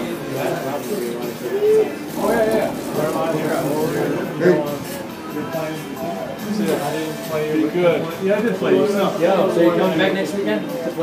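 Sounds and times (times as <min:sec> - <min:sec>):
indistinct voices talking: 0:00.0 - 0:08.0.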